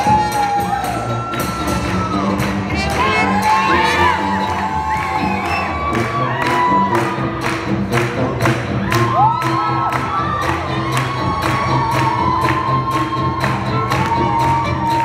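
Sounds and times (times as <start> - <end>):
brass jazz band playing: 0.0 - 15.0
crowd cheering and whooping: 0.0 - 15.0.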